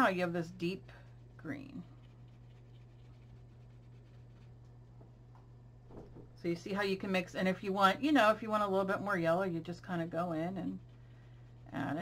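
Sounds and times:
paintbrush scrubbing on paper: 0.0 - 4.9, 8.0 - 12.0
low steady hum: 0.0 - 12.0.

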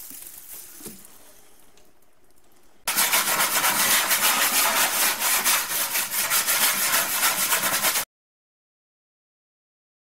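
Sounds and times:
tablet scrubbing oven floor: 2.9 - 8.0.

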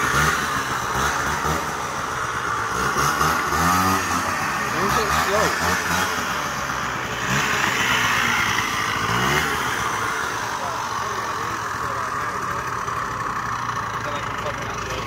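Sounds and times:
scooter engine revving: 0.0 - 15.0.

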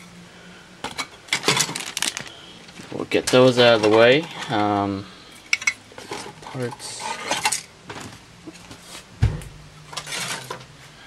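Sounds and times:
dull thump: 9.2 - 9.6.

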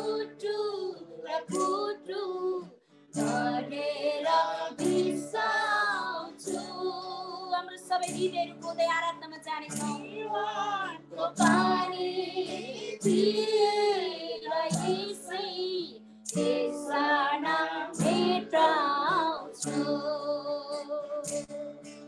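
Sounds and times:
high voice singing worship song: 0.0 - 8.7, 9.7 - 21.5.

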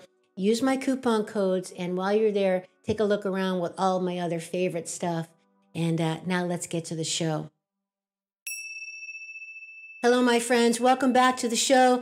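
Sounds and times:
bell-like ding: 8.5 - 12.0.

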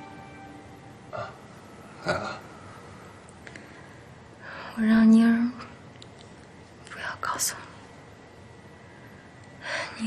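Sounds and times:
woman whispering: 6.8 - 7.8.

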